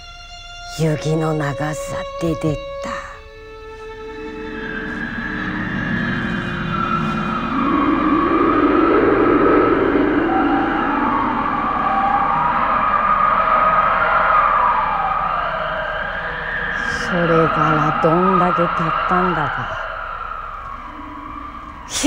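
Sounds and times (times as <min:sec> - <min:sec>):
howling blizzard wind: 0:03.3 - 0:22.0.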